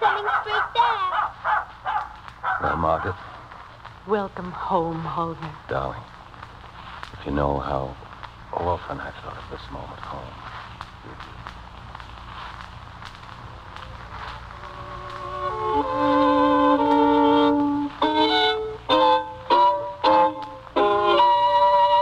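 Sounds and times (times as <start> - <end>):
violin playing with vibrato: 14.5 - 22.0.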